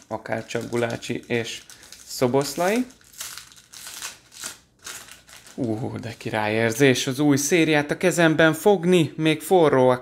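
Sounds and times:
paper wrapper tearing and crinkling: 0.0 - 6.4.

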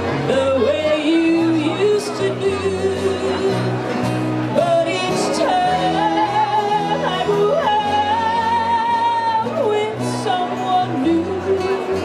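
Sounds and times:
bass guitar: 0.0 - 12.0
strummed acoustic guitars: 0.0 - 12.0.

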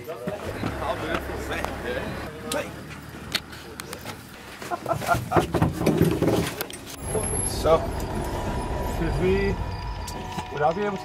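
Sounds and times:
people talking: 0.0 - 2.9, 7.0 - 8.1, 8.8 - 9.7, 10.4 - 11.0
steady low rumble: 6.9 - 11.0.

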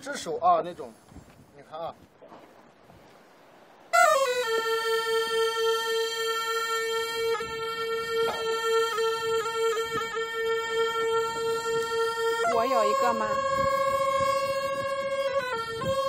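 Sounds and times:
wind instrument long note: 4.0 - 16.0.

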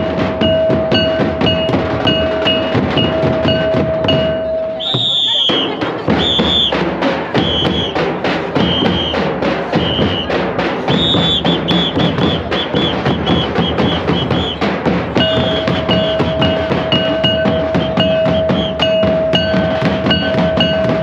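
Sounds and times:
barrel drums fast rhythm: 0.0 - 21.0
high held tone: 15.2 - 21.0.

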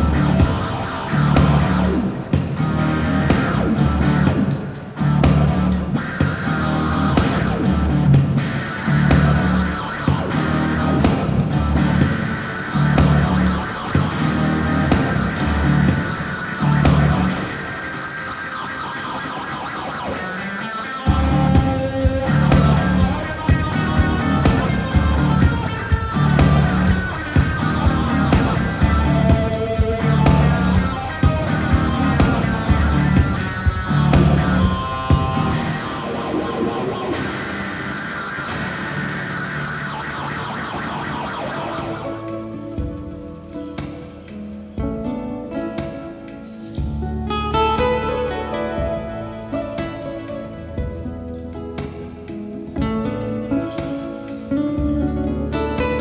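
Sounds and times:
guitar music: 0.0 - 56.0.

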